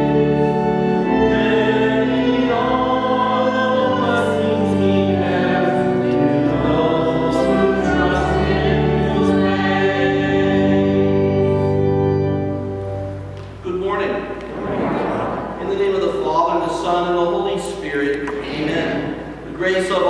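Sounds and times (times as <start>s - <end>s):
choir singing a hymn: 0.0s - 12.7s.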